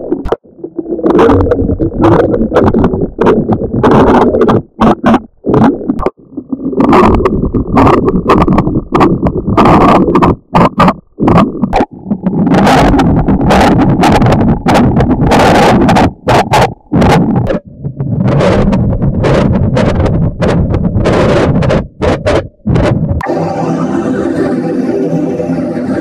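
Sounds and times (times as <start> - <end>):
distorted electronic noise: 0.0 - 26.0.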